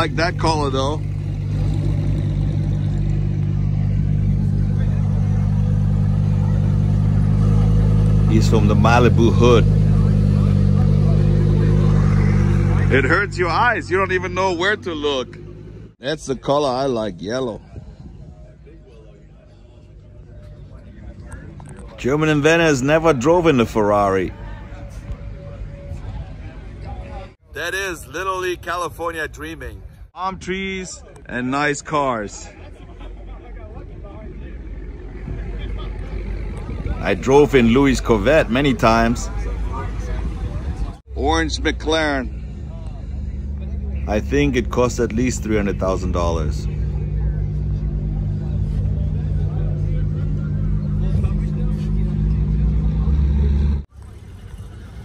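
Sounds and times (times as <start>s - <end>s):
car engine idling: 0.0s - 16.0s, 32.6s - 55.0s
faint crowd voices: 17.1s - 55.0s.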